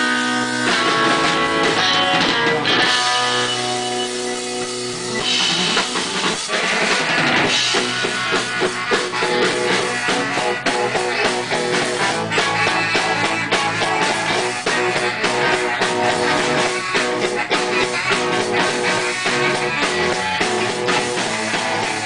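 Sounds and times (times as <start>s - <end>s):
baritone saxophone: 0.0s - 22.0s
drum kit steady beat: 0.0s - 22.0s
live rock band playing: 0.0s - 22.0s.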